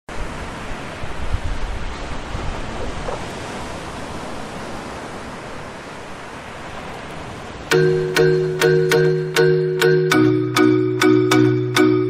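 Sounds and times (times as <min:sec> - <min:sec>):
wind on microphone: 0:00.1 - 0:07.7.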